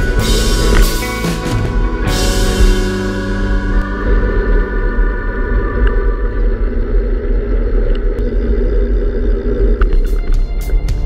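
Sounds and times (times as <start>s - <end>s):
faint sustained musical tones: 0.0s - 11.0s.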